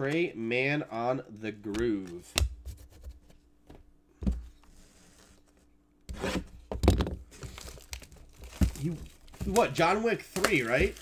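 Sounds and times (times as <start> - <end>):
plastic shrink wrap tearing: 7.4 - 11.0.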